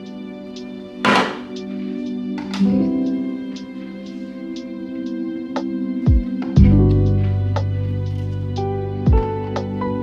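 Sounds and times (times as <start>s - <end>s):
instrumental background music: 0.0s - 10.0s
item thunking on fridge shelf: 1.1s - 1.5s.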